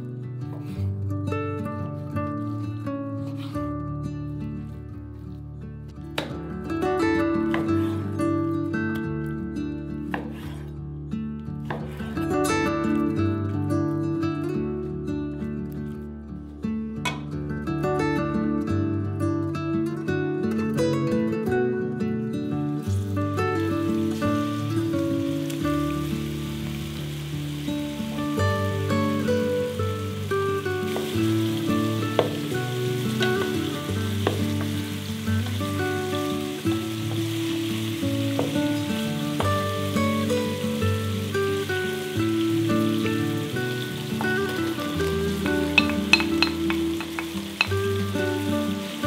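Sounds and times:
acoustic guitar music: 0:00.0 - 0:49.0
meat sizzling in hot oil: 0:22.8 - 0:49.0
spoon clinking on bowl: 0:45.8 - 0:47.7.

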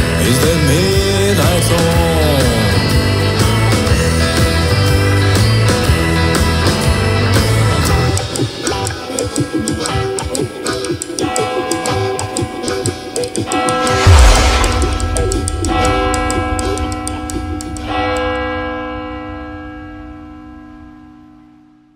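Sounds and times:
blues-rock electric guitar: 0:00.0 - 0:14.0
loud cymbal crash: 0:13.8 - 0:20.8.

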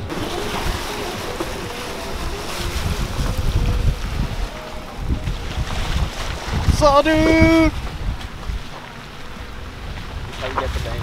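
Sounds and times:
tyres on wet gravel road: 0:00.0 - 0:11.0
wind buffeting microphone: 0:00.0 - 0:11.0.

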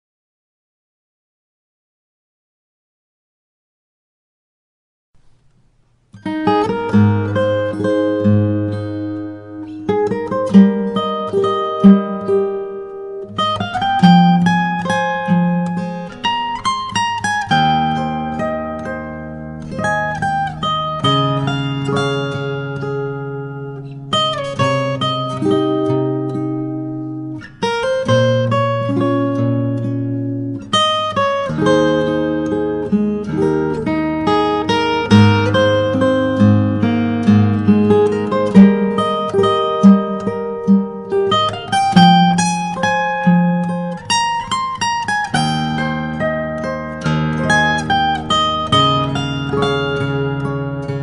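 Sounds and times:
fingerstyle acoustic guitar: 0:05.2 - 0:51.0.

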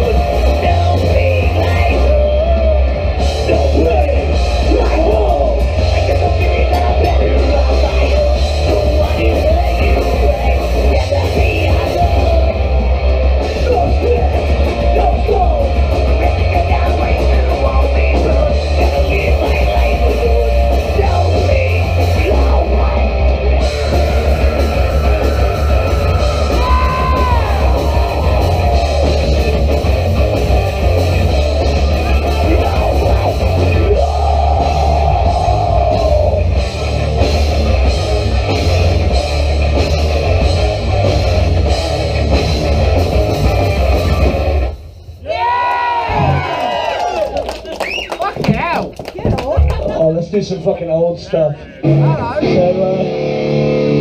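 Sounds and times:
punk band playing live: 0:00.0 - 0:54.0.

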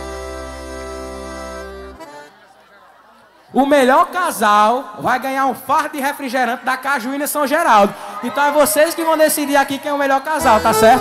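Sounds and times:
band holding reedy chord: 0:00.0 - 0:02.3, 0:10.4 - 0:11.0.

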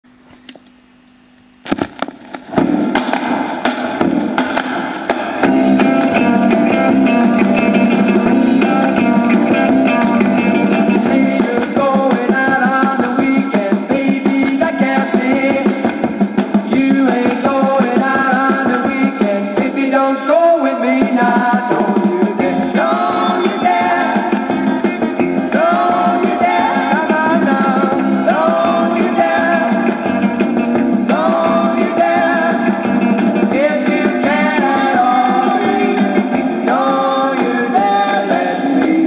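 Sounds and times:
vinyl groove noise and clicks: 0:00.2 - 0:04.4
beat band music: 0:01.7 - 0:39.0.

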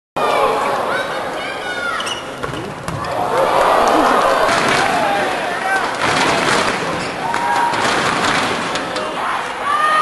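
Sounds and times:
people talking and calling out: 0:00.2 - 0:07.8.

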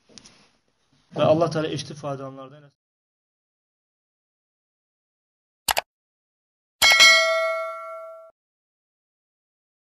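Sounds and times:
sharp ringing bell-like hit: 0:06.8 - 0:08.4.

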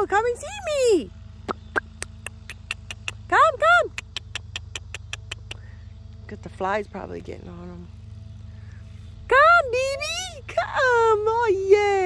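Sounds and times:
tongue clicks: 0:01.5 - 0:03.3, 0:03.9 - 0:05.7.

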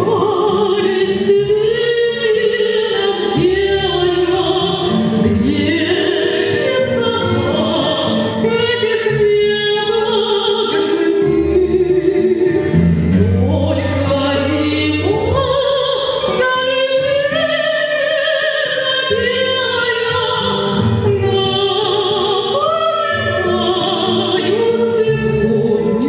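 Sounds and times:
instrumental accompaniment: 0:00.0 - 0:26.0
woman singing: 0:00.0 - 0:26.0.

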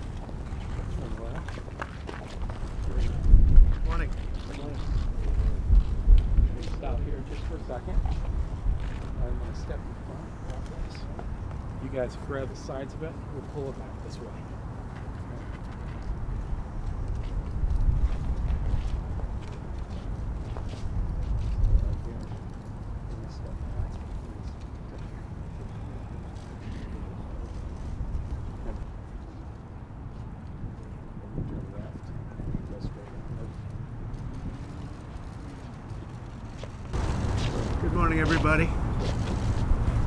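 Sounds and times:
wind buffeting microphone: 0:00.0 - 0:12.8, 0:14.5 - 0:40.0
low outdoor rumble: 0:30.6 - 0:40.0.

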